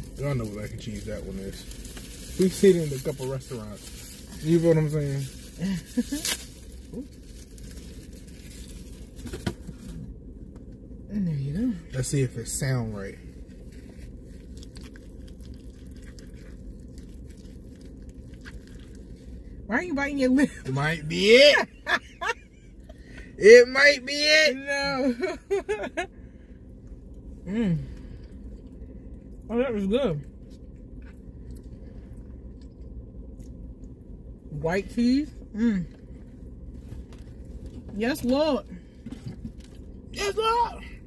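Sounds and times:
car cabin hum: 0:00.0 - 0:41.0
person laughing: 0:05.6 - 0:06.3, 0:21.6 - 0:23.0, 0:24.9 - 0:26.1.

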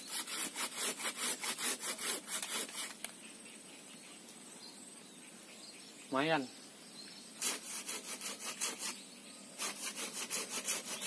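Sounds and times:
hand saw cutting branch: 0:00.0 - 0:03.1, 0:07.4 - 0:09.0, 0:09.6 - 0:11.0.

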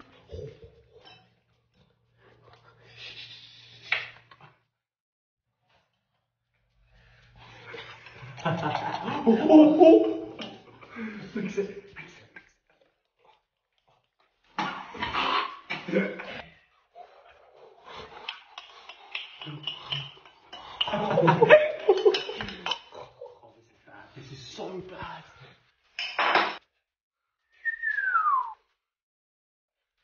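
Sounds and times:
falling whistle: 0:27.6 - 0:28.6.

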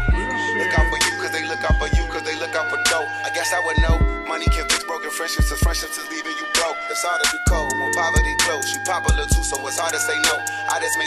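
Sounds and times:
rapping over a hip hop beat: 0:00.0 - 0:11.0.

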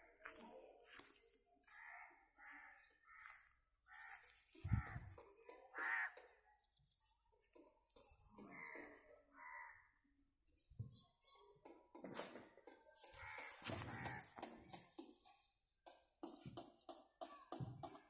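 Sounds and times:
birds calling: 0:12.1 - 0:15.2.

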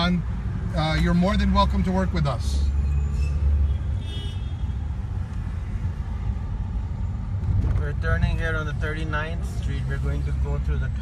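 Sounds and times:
car driving in city traffic: 0:00.0 - 0:11.0.

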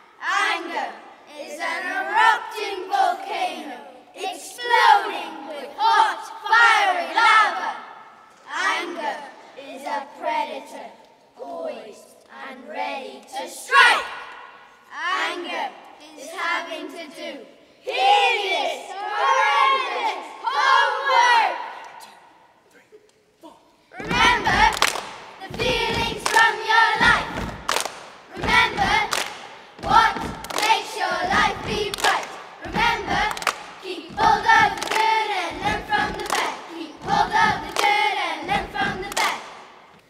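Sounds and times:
children reciting in unison: 0:00.0 - 0:22.9, 0:23.5 - 0:27.7, 0:28.3 - 0:39.9.

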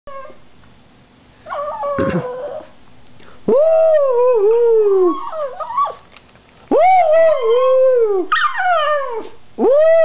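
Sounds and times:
dog howling: 0:01.5 - 0:02.7, 0:03.6 - 0:06.0, 0:06.7 - 0:10.0.

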